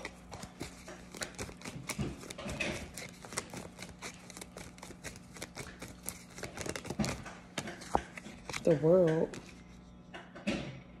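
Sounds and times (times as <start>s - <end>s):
cards being shuffled: 0.0s - 9.7s.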